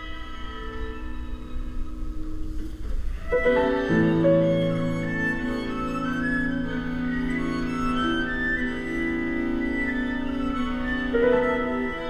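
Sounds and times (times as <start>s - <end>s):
string quartet playing chamber music: 0.0s - 12.0s.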